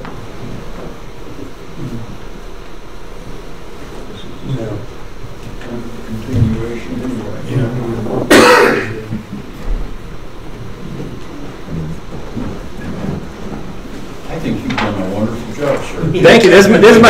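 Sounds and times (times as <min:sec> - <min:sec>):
loud cough: 0:08.3 - 0:09.2.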